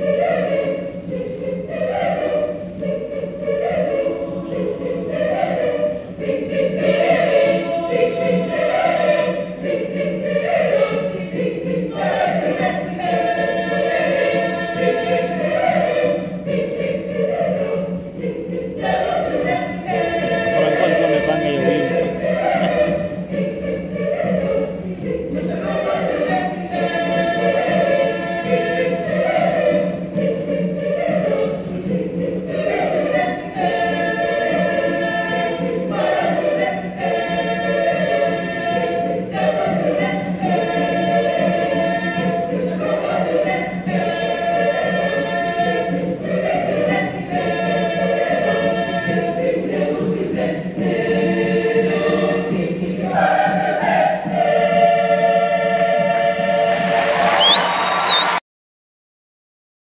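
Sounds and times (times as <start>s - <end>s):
girls' choir singing: 0.0s - 58.4s.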